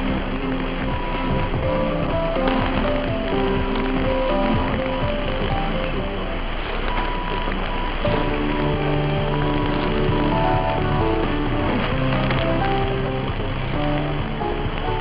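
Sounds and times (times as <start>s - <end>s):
music over am radio: 0.0s - 15.0s
radio static hiss: 0.0s - 15.0s.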